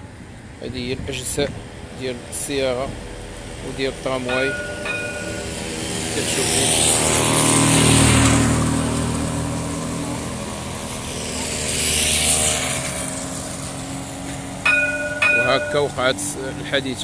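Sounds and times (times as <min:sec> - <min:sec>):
tram electric drive hum: 0:00.0 - 0:17.0.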